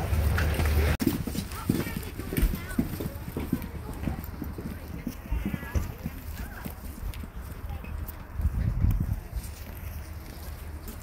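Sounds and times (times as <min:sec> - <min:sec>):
faint voices: 0:00.0 - 0:11.0
footsteps on hard pavement: 0:00.0 - 0:11.0.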